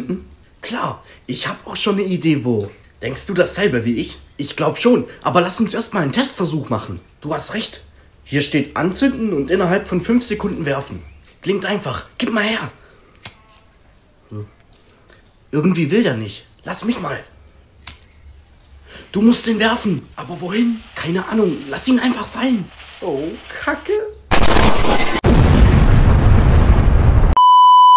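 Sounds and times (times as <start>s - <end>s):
lighter click: 13.2s - 13.4s
loud explosion with bass rumble: 24.3s - 27.4s.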